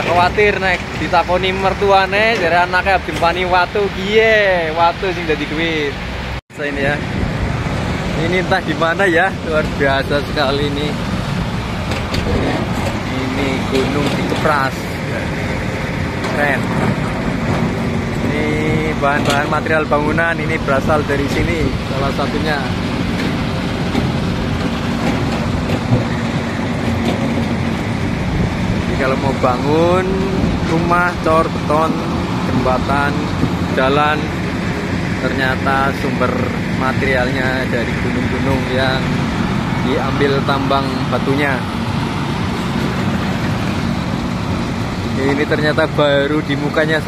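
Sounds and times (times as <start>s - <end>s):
broad noisy hiss: 0.0s - 23.9s
quarry machinery rumbling: 0.0s - 47.0s.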